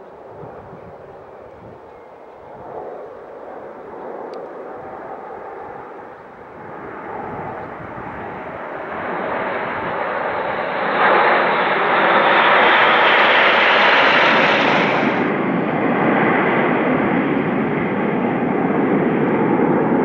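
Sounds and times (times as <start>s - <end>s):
jets flying past: 2.5s - 20.0s.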